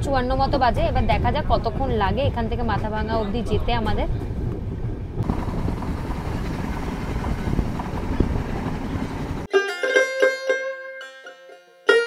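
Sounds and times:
train wheels rumbling on rails: 0.0 - 9.5
wind noise: 0.0 - 9.5
plucked string music: 9.5 - 12.0.

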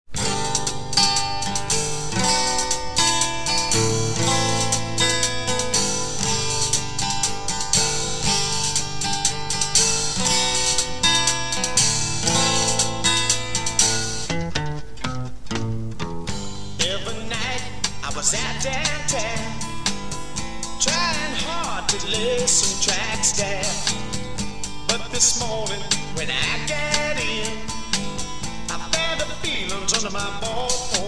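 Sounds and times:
bass: 0.1 - 31.0
strummed acoustic guitar: 0.1 - 31.0.

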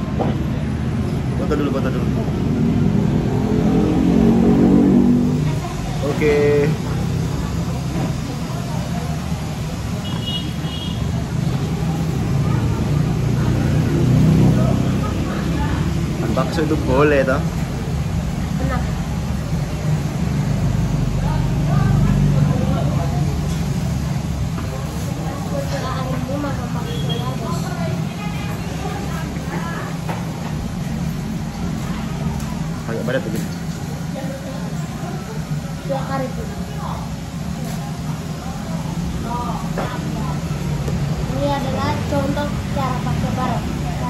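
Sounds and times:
road traffic rumble: 0.0 - 44.0.

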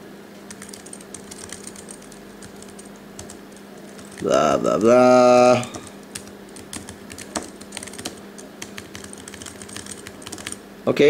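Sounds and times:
faint steady hum: 0.0 - 11.0
keyboard keys clicking: 0.5 - 10.6.

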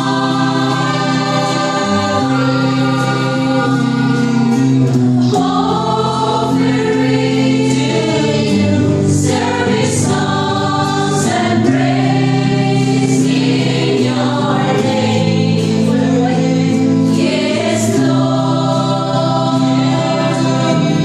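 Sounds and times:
choir singing worship song: 0.0 - 21.0
guitar accompaniment: 0.0 - 21.0.

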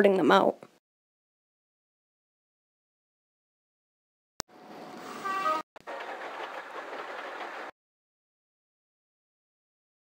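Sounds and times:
train horn: 5.2 - 6.1.

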